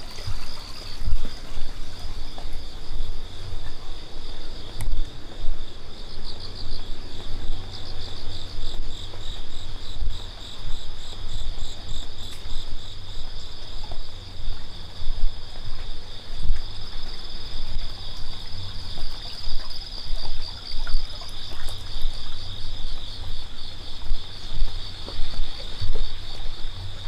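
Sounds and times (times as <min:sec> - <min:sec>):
insects trilling: 0:00.0 - 0:27.0
low uneven rumble: 0:00.0 - 0:27.0.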